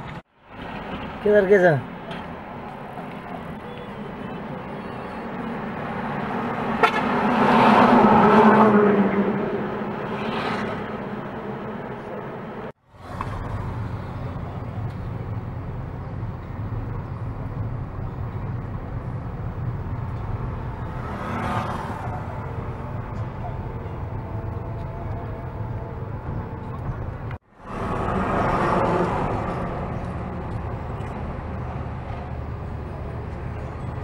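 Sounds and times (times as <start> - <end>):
vehicle road noise: 0.0 - 34.0
car horn: 6.6 - 11.0.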